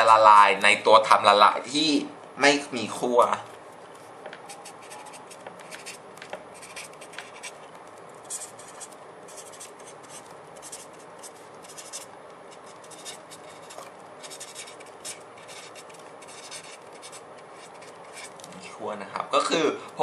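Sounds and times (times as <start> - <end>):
pen scratching on paper: 4.5 - 7.6, 8.2 - 18.3.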